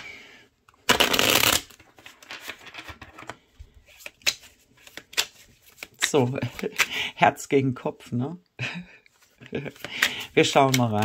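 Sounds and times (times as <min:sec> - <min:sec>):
cards shuffled by hand: 0:00.9 - 0:06.9, 0:09.1 - 0:11.0.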